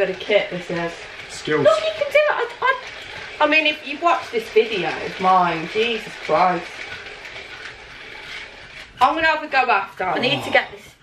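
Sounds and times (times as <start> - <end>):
hula hoop ball clattering: 0.0 - 10.2.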